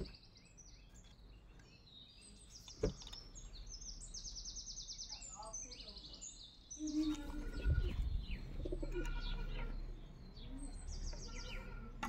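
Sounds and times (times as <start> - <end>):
wild birds chirping: 0.0 - 12.0
pigeon cooing: 6.8 - 9.8.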